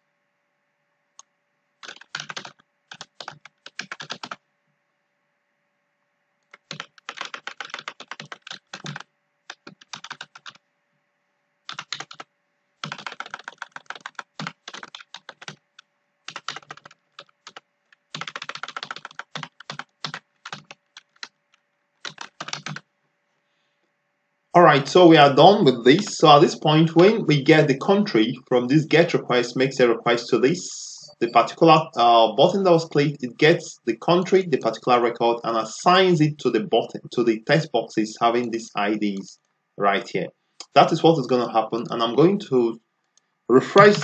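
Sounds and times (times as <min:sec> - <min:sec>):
keyboard keys clicking: 0:01.8 - 0:04.4, 0:06.5 - 0:10.6, 0:11.7 - 0:12.2, 0:12.8 - 0:22.8.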